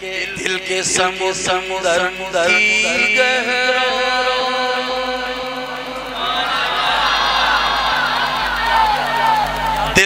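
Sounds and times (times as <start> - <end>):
man chanting: 0.0 - 6.4
many voices chanting: 1.0 - 10.0.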